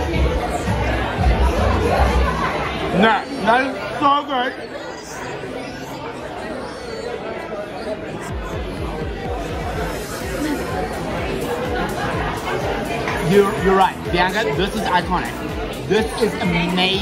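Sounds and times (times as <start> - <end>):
music: 0.0 - 2.6, 8.3 - 17.0
chatter: 0.0 - 17.0.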